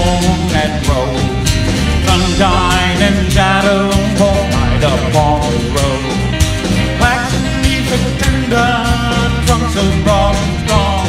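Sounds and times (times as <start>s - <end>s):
live country-rock band: 0.0s - 11.0s.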